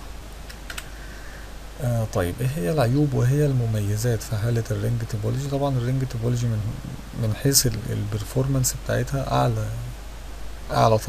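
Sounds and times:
steady low hum: 0.0s - 11.0s
faint computer clicks: 0.4s - 0.9s.

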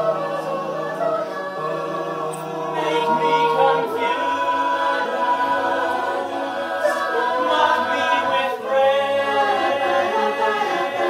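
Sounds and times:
a cappella group singing in harmony: 0.0s - 11.0s.

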